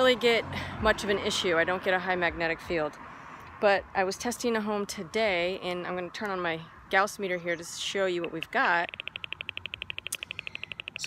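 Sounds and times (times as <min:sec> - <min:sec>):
gauss meter rapid ticking: 0:08.2 - 0:11.0.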